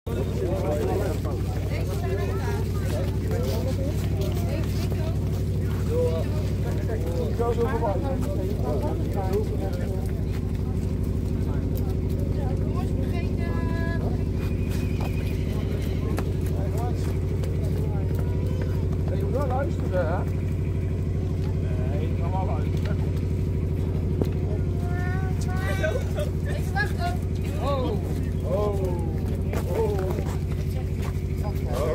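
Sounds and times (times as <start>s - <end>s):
low engine drone: 0.1s - 31.9s
voices talking: 0.1s - 31.9s.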